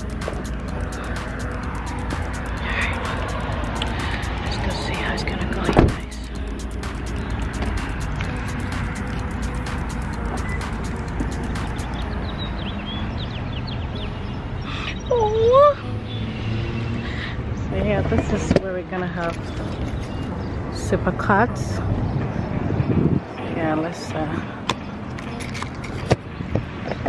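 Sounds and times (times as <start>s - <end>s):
steady outdoor rumble: 0.0s - 27.0s
car door shutting: 5.6s - 6.0s
wind on microphone: 21.7s - 23.8s.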